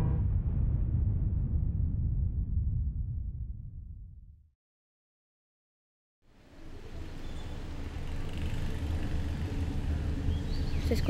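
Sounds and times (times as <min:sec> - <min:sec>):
steady low rumble: 0:00.0 - 0:04.5.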